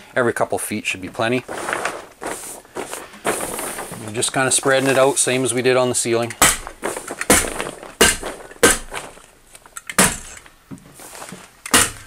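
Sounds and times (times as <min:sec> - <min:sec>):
hammer stapler striking wood: 0:06.4 - 0:09.1, 0:09.9 - 0:10.4, 0:11.7 - 0:12.0.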